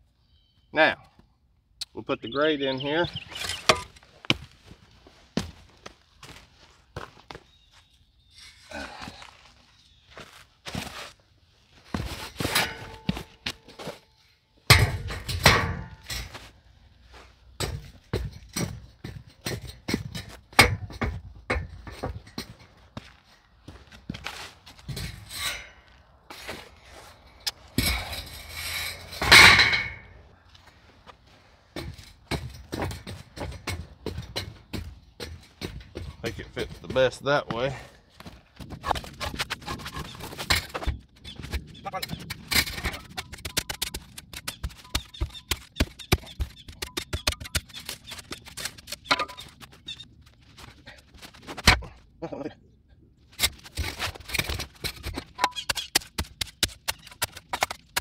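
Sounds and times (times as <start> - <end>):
rocks and grate knocking: 17.6 - 22.6, 31.8 - 37.2, 38.6 - 50.0, 53.4 - 58.0
loud scraping: 24.8 - 30.2.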